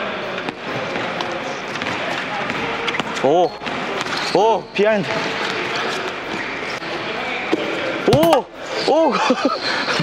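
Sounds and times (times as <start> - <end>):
ball bouncing on floor: 8.1 - 8.4.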